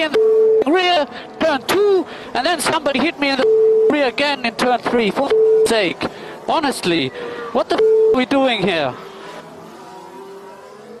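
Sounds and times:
racing car engine drone: 0:00.0 - 0:11.0.

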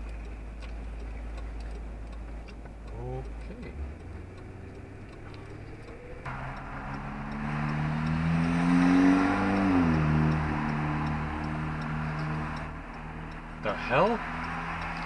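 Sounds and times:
car engine accelerating: 0:00.0 - 0:15.0.

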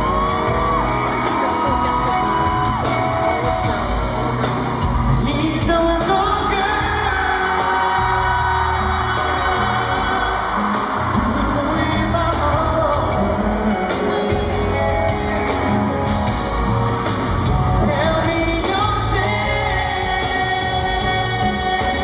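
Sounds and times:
live band accompaniment: 0:00.0 - 0:22.0
male vocal singing into microphone: 0:05.1 - 0:15.6, 0:17.6 - 0:22.0.

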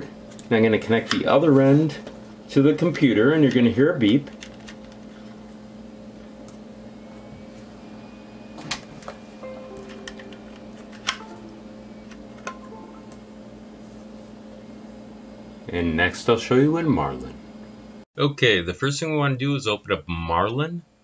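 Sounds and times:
steady low hum: 0:00.0 - 0:18.1.

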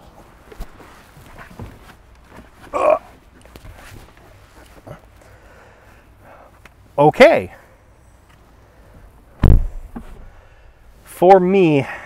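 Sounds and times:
clothing and seat shuffling: 0:00.0 - 0:05.4, 0:09.4 - 0:10.3
man grunting: 0:02.7 - 0:03.1.

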